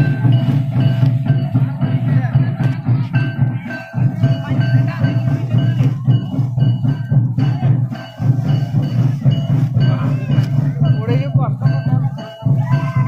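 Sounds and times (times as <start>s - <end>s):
festival music with drumming: 0.0s - 13.0s
voices calling and singing: 0.0s - 13.0s.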